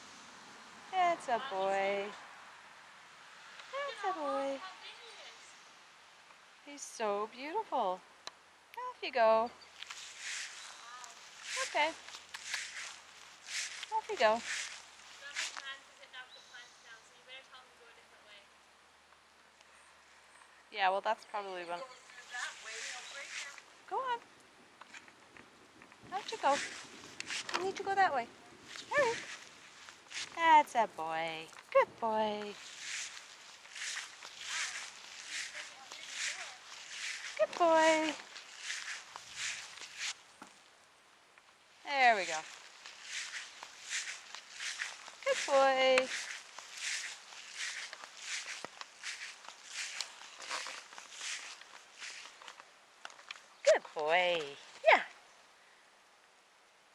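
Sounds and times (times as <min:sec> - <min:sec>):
woman speaking: 0:00.9 - 0:02.2, 0:03.7 - 0:05.5, 0:06.7 - 0:08.0, 0:08.8 - 0:09.6, 0:10.8 - 0:12.0, 0:13.9 - 0:14.5, 0:15.2 - 0:18.5, 0:20.7 - 0:24.2, 0:26.1 - 0:26.7, 0:27.5 - 0:28.3, 0:28.9 - 0:29.3, 0:30.3 - 0:32.6, 0:34.5 - 0:36.7, 0:37.4 - 0:38.2, 0:41.9 - 0:42.5, 0:45.2 - 0:46.3, 0:53.7 - 0:55.1
footsteps walking: 0:09.7 - 0:15.8, 0:22.0 - 0:24.2, 0:24.8 - 0:40.7, 0:41.4 - 0:54.8.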